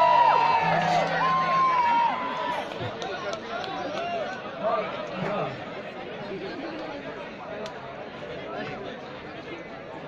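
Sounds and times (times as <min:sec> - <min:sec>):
large audience chattering: 0:00.0 - 0:10.0.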